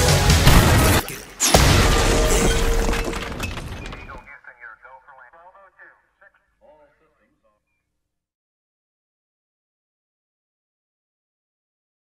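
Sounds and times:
loud crashing and shattering: 0.4s - 4.2s.

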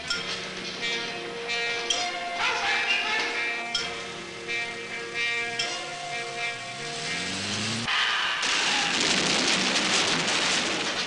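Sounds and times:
lorry engine: 0.0s - 10.4s
tyres rushing over cobblestones: 4.4s - 11.0s.

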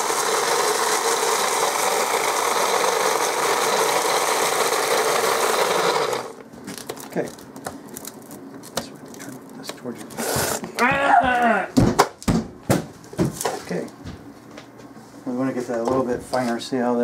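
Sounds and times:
person calling out: 10.7s - 11.8s.

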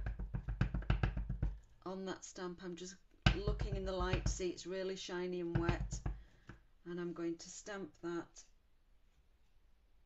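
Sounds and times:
stamp tapping on ink pad: 3.3s - 4.4s, 5.5s - 6.6s.

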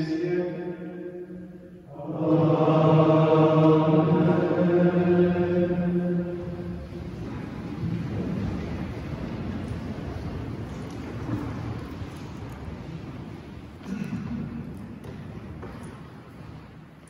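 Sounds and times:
men chanting in unison: 1.9s - 6.4s
rustle and shuffle of people sitting: 4.2s - 17.0s.

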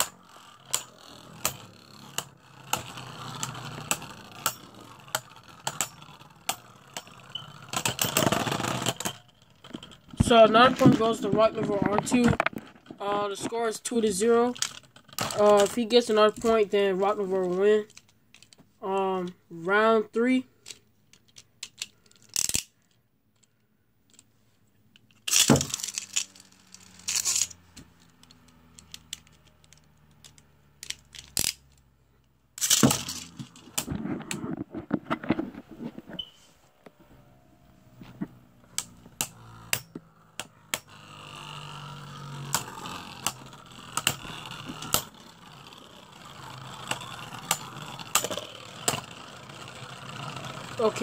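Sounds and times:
spinning tops whirring: 0.0s - 12.4s, 25.3s - 31.8s, 32.6s - 34.0s, 37.8s - 51.0s
spinning tops clacking: 25.3s - 31.8s, 32.6s - 33.9s, 38.8s - 51.0s.

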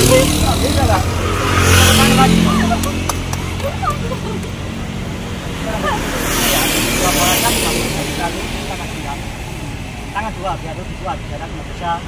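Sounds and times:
road traffic noise: 0.0s - 12.0s
vehicle passing: 0.0s - 12.0s.

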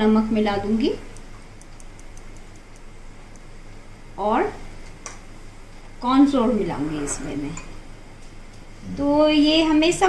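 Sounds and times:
low steady hum: 0.0s - 10.0s
salt ticking on food: 1.0s - 3.6s.

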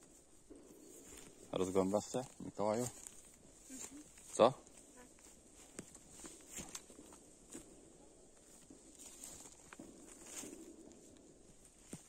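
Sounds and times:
footsteps crunching through leaves: 0.1s - 7.8s, 8.4s - 11.0s.

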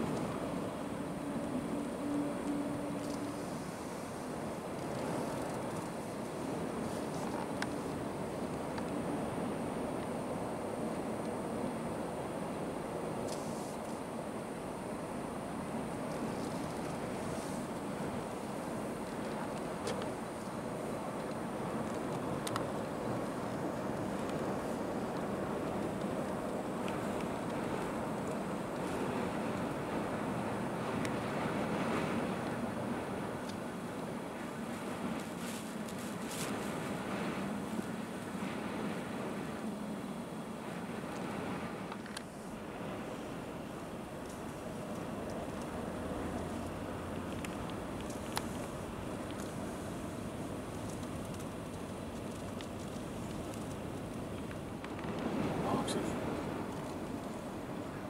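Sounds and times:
wind against car: 0.0s - 58.0s
faint ticks: 1.4s - 6.2s, 6.8s - 9.0s, 19.0s - 29.8s, 43.8s - 55.3s
car engine and road noise: 41.7s - 58.0s.

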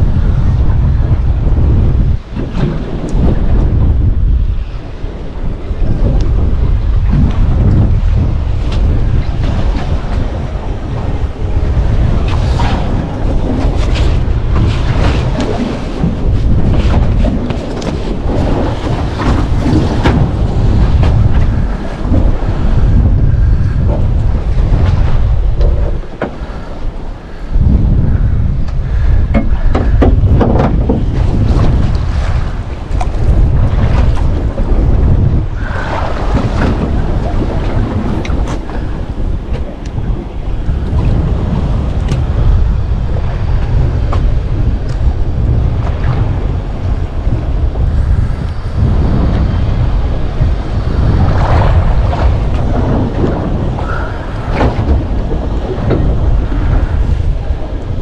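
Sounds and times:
sea water washing against hull: 0.0s - 58.0s
wind rumbling on microphone: 0.0s - 58.0s.

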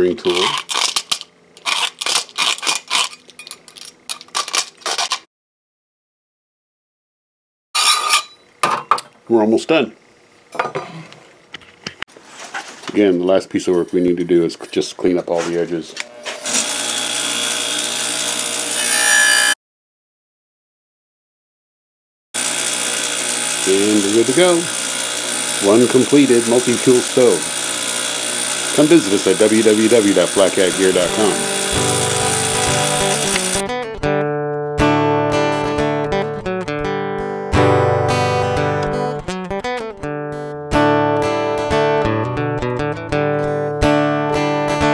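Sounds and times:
acoustic guitar music: 29.0s - 44.9s.

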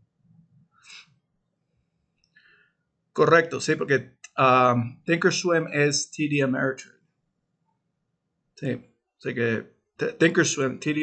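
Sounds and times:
faint short breath: 2.3s - 2.8s.

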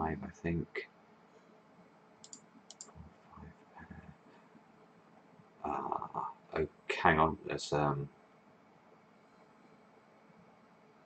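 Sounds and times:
sharp computer clicks: 2.2s - 3.0s.

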